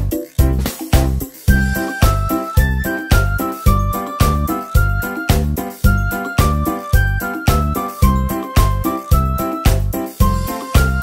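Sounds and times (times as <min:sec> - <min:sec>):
upbeat music with steady beat: 0:00.0 - 0:11.0
chiming bell-like melody: 0:01.5 - 0:11.0.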